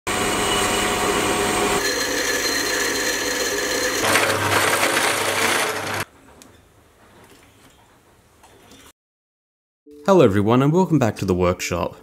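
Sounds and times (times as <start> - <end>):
metal lathe drilling steel: 0.1 - 6.0.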